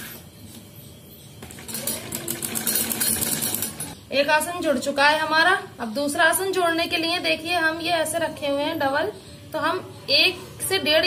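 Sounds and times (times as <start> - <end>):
sewing machine stitching: 1.4 - 4.0.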